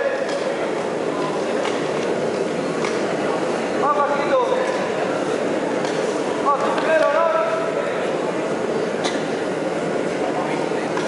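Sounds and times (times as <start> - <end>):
crowd hubbub in sports hall: 0.0 - 11.0.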